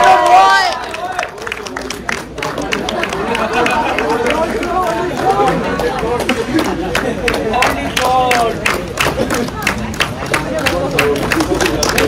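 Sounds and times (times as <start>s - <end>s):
people talking at once: 0.0s - 12.0s.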